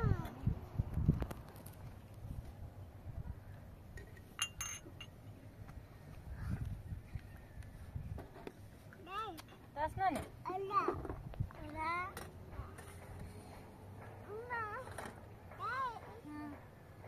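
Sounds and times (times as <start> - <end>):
metal dishes clinking: 4.0 - 5.1.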